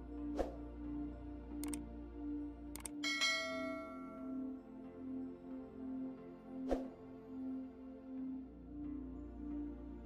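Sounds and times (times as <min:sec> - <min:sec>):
soft ambient music: 0:00.0 - 0:10.0
mouse clicks: 0:01.6 - 0:01.8, 0:02.7 - 0:03.0
bright bell chime: 0:03.0 - 0:04.5.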